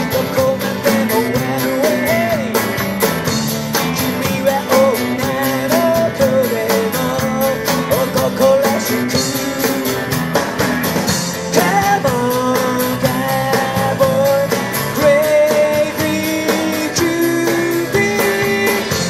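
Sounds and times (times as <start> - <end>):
man singing: 0.0 - 10.4, 11.4 - 19.0
electric guitar: 0.0 - 19.0
live rock and roll band: 0.0 - 19.0.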